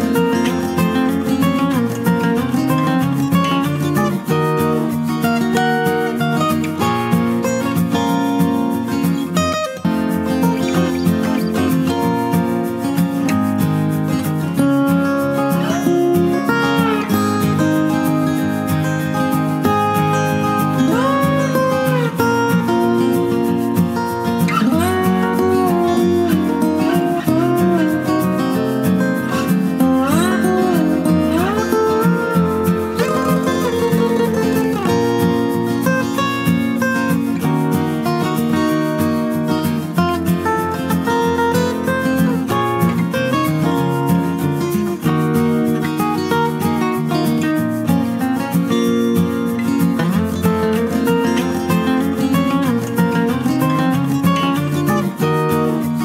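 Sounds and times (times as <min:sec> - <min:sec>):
acoustic guitar music: 0:00.0 - 0:56.0.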